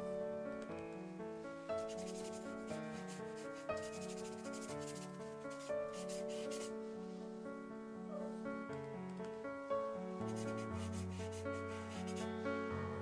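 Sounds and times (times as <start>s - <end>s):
soft instrumental music: 0.0s - 13.0s
brush scrubbing on paper: 1.9s - 6.7s, 10.3s - 12.2s.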